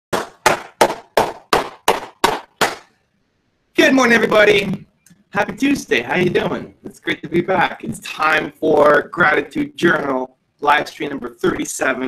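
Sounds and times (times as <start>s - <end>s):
hands clapping: 0.1s - 2.9s.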